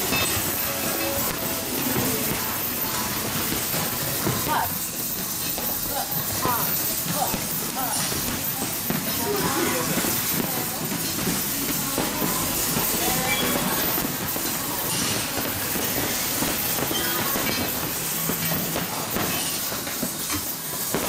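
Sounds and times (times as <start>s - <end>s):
boxing gloves thudding on heavy bags: 0.0s - 21.0s.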